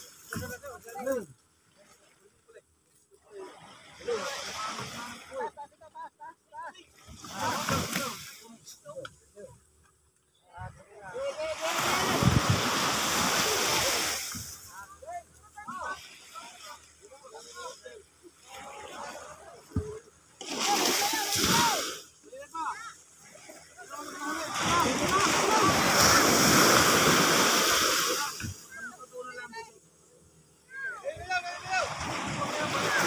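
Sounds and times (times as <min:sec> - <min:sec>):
surf washing on sand beach: 0:00.0 - 0:09.6, 0:10.6 - 0:33.0.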